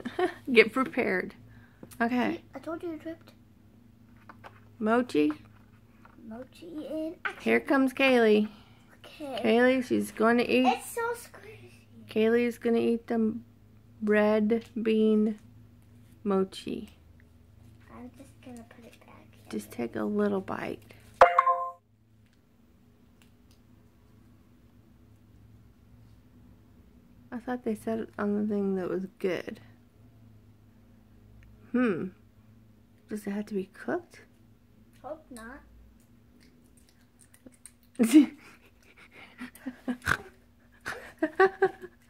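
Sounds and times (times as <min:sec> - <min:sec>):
faint steady hum: 0:00.0 - 0:42.0
short ringing chime: 0:21.2 - 0:21.8.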